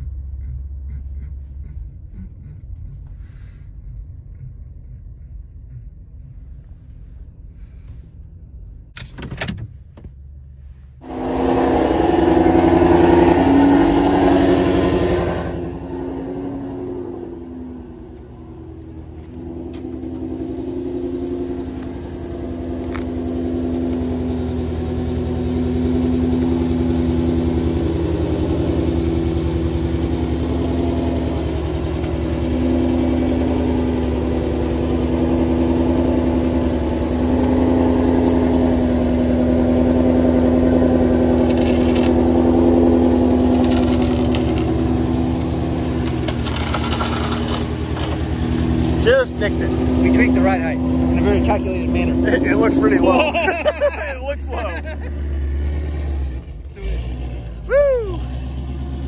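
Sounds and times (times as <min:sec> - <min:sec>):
race car engine idling: 0:17.1 - 0:59.0.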